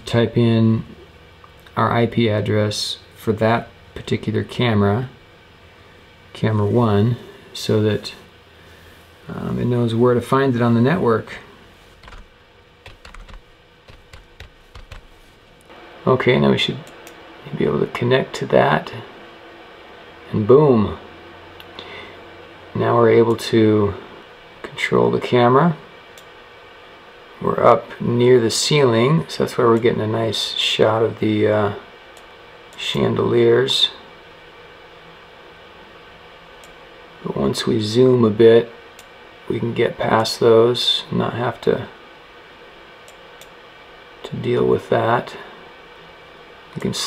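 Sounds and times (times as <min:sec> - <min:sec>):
faint low hum: 0:00.0 - 0:47.0
low hiss: 0:00.0 - 0:47.0
keyboard key clicks: 0:12.0 - 0:15.1.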